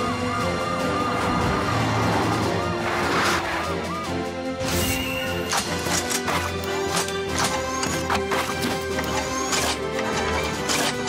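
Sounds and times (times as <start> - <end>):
background music: 0.0 - 11.0
mechanical clanks: 5.5 - 11.0.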